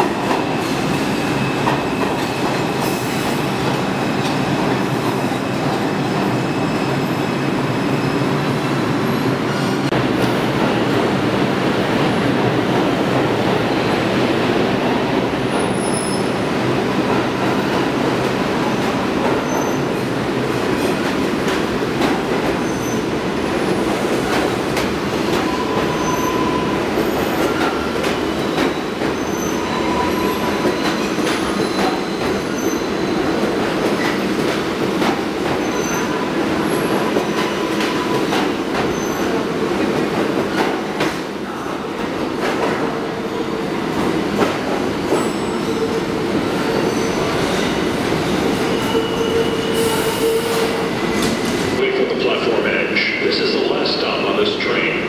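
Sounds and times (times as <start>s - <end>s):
subway train rumbling: 0.0s - 55.0s
high wheel squeals: 25.4s - 33.2s, 48.6s - 50.8s.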